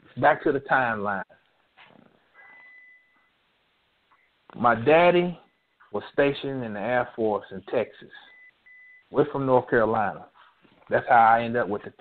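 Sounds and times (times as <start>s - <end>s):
faint high-pitched beep: 2.4s - 3.4s, 4.1s - 4.4s, 5.4s - 6.0s, 8.2s - 9.2s.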